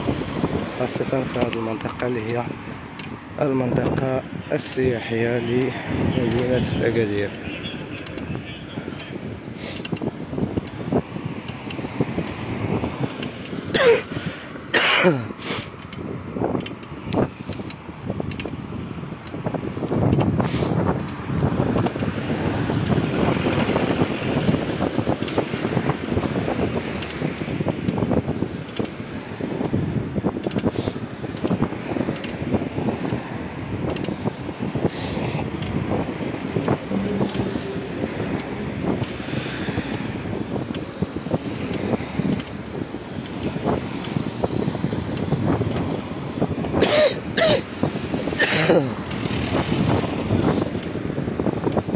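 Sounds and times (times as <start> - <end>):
car road noise: 0.0 - 51.9
wind buffeting microphone: 0.0 - 51.9.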